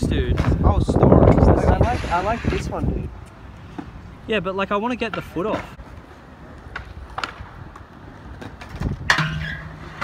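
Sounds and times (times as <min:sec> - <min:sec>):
scooter wheels rolling on concrete: 0:00.2 - 0:10.0
scooter landing clack: 0:08.4 - 0:10.0.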